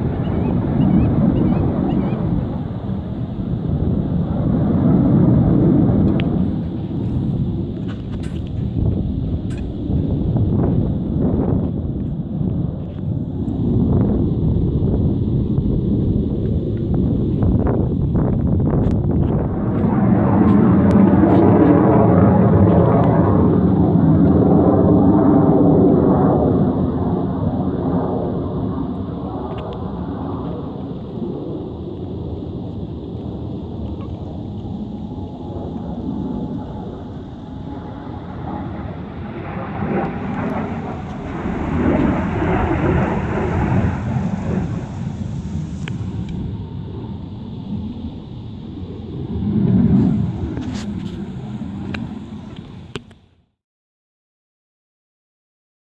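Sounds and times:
jet roaring overhead: 0:00.0 - 0:53.6.

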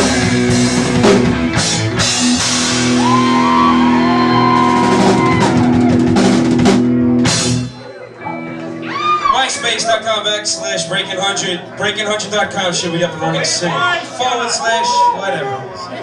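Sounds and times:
drum kit: 0:00.0 - 0:08.2
electric guitar: 0:00.0 - 0:09.4
bass guitar: 0:00.0 - 0:09.6.

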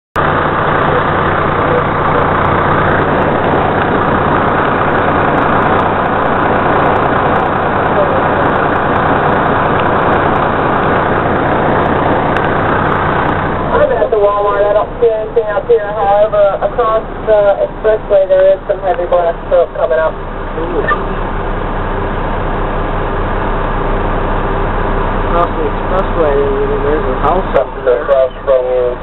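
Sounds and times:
loud rushing noise: 0:00.2 - 0:15.2
truck engine droning: 0:00.2 - 0:29.0.

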